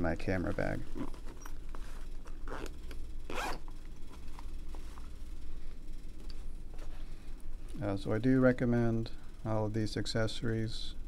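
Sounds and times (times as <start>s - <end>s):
fabric rustling: 0.0s - 7.7s
zipper pulled: 0.9s - 3.7s.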